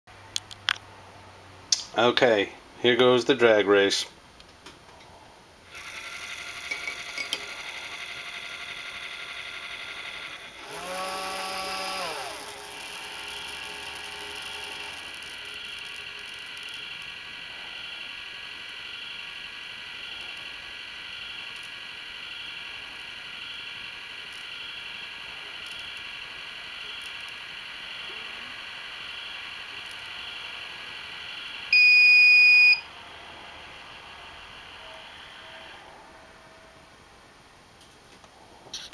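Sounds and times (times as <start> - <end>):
powder dispenser motors whining: 5.7 - 35.9
electronic beep: 31.7 - 32.9.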